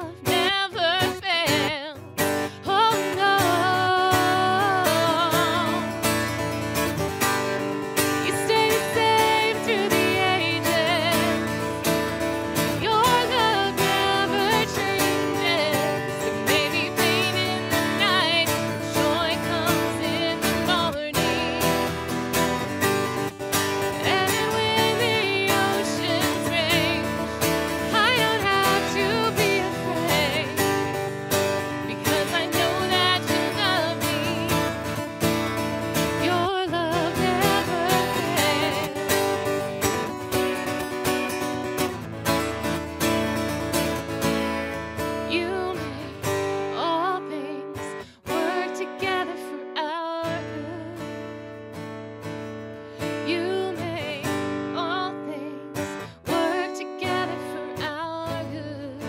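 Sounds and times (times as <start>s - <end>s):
woman singing worship song: 0.0s - 5.9s, 8.2s - 11.5s, 12.7s - 21.8s, 24.0s - 30.8s, 31.8s - 34.8s, 36.2s - 39.0s, 45.3s - 51.0s, 53.2s - 55.6s, 56.2s - 59.0s
strummed acoustic guitar: 0.0s - 59.0s.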